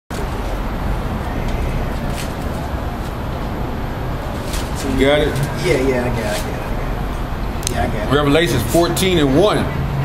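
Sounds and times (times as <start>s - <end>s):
street noise low rumble: 0.1s - 10.0s.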